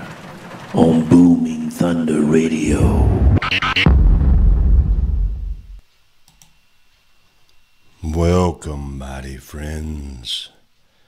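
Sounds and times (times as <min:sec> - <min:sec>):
faint short clicks: 0:06.2 - 0:06.6.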